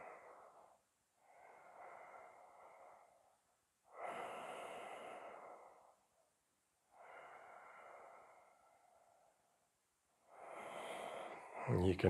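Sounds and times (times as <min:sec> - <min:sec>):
person breathing slowly: 0:00.0 - 0:12.0.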